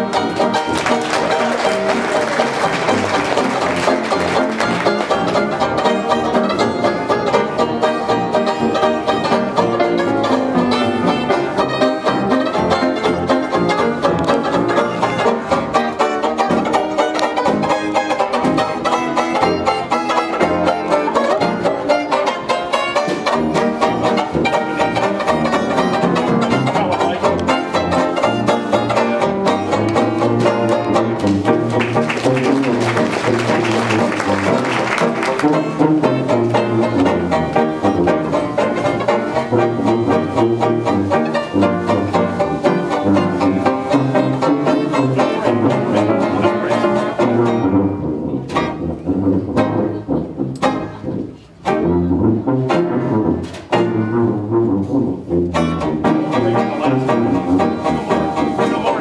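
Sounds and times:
jazz band playing: 0.0 - 59.0.

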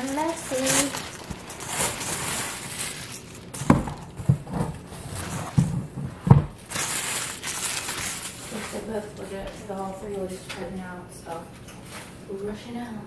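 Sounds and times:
paper towels rustling: 0.0 - 6.0, 6.6 - 10.0.

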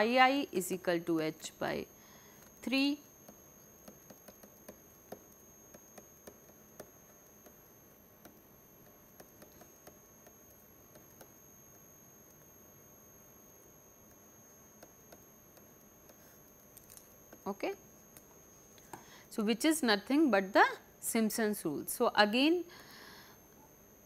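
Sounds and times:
faint high-pitched whine: 0.0 - 24.0
stylus tapping on pen tablet: 3.2 - 11.4, 14.8 - 16.4.

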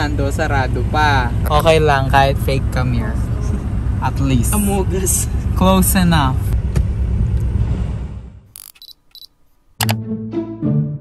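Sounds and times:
background music: 9.8 - 11.0.

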